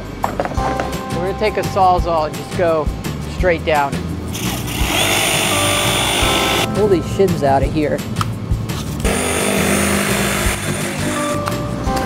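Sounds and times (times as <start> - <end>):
electric power tool running: 4.3 - 6.7, 9.1 - 11.3.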